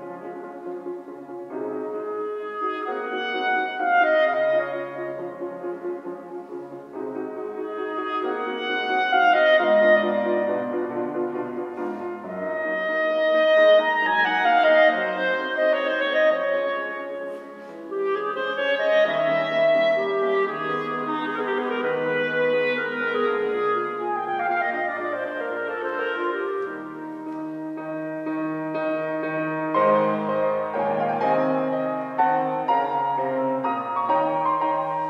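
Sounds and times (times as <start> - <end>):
classical instrumental piece: 0.0 - 35.0.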